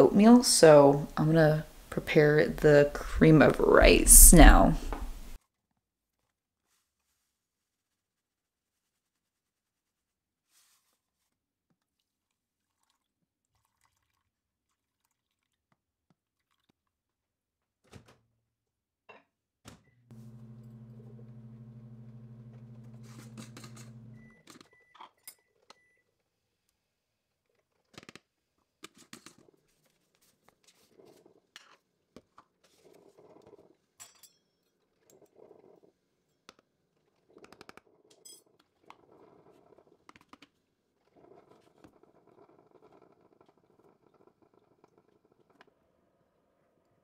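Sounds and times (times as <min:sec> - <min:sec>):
appliance hum: 0:20.1 - 0:24.4.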